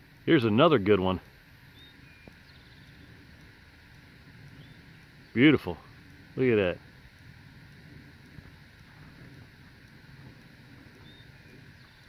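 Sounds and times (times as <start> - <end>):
faint hiss of air: 0.0 - 12.0
high bird chirps: 1.7 - 3.1, 11.0 - 12.0.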